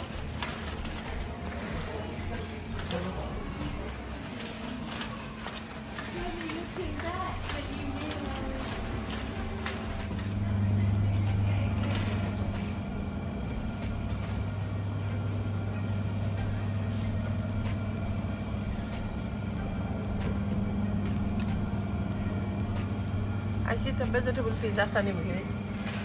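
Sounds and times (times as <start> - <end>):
freezer cabinets humming: 0.0 - 26.0.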